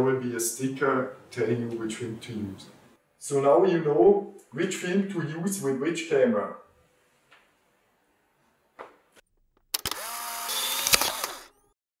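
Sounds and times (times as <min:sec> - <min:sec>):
sharp clicks: 0:09.6 - 0:11.5
instant camera motor whirring: 0:09.7 - 0:11.8.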